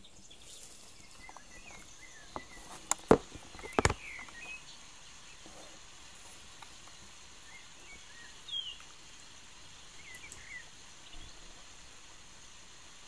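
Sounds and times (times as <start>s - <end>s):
birds chirping faintly: 0.0s - 13.0s
steady hiss: 0.0s - 13.0s.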